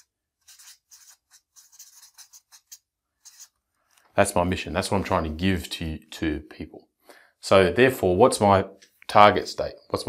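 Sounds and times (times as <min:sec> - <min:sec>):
marker writing on paper: 0:00.0 - 0:03.6.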